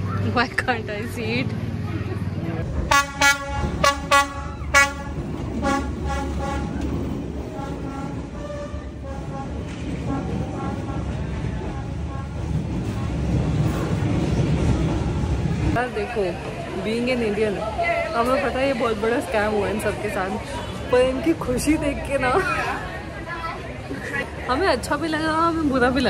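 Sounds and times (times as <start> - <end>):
train rolling past: 0.0 - 26.0
train horn toots: 2.8 - 6.9, 7.5 - 13.3.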